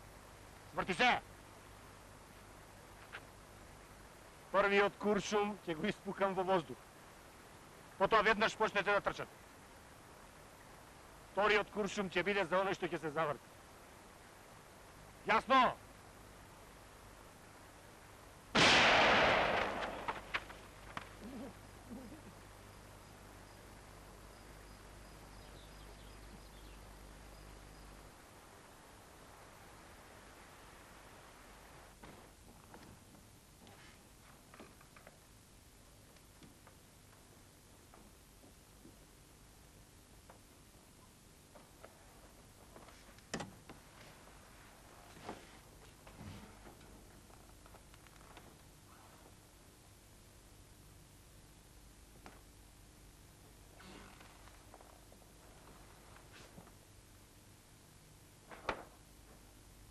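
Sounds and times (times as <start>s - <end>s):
echoing gunshot: 18.5s - 20.5s
faint clicks: 47.6s - 48.5s.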